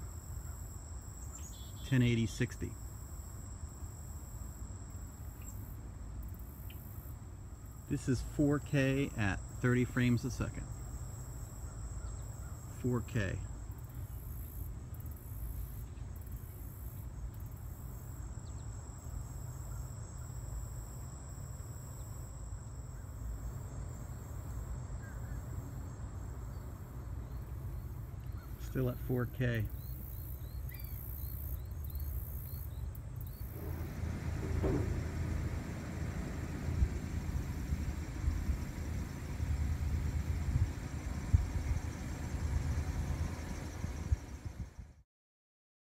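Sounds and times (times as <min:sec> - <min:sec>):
high chirps of bird or insect: 0:00.0 - 0:02.2, 0:10.2 - 0:12.8, 0:13.5 - 0:20.5, 0:22.9 - 0:44.9
crickets trilling: 0:00.0 - 0:45.0
wind rumble on microphone: 0:33.5 - 0:45.0.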